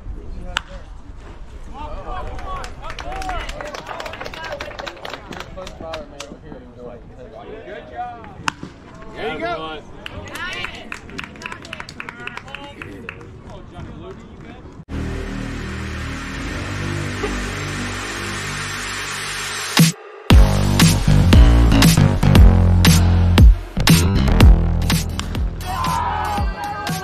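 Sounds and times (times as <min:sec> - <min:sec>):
spectators shouting: 0:25.5 - 0:27.0.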